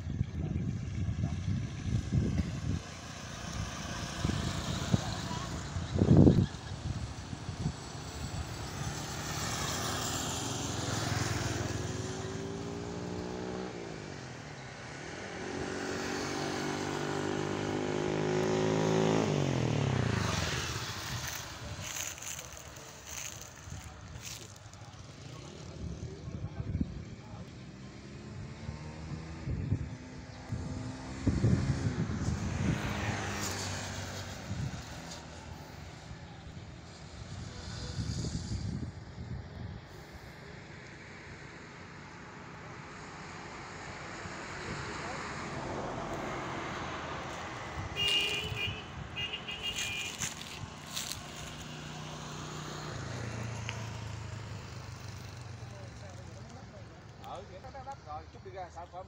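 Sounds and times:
vehicles passing on road: 0.0 - 59.0.

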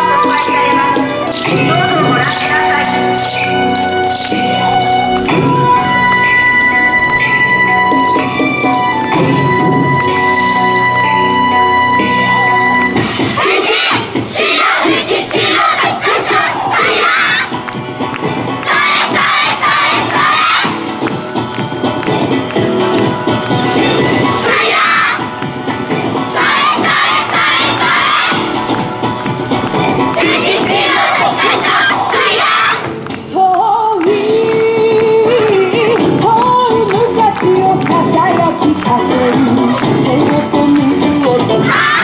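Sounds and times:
recorded dance music with vocals: 0.0 - 42.0
women shouting chants in unison: 13.4 - 17.5, 24.3 - 25.2, 30.2 - 32.8, 41.6 - 42.0.

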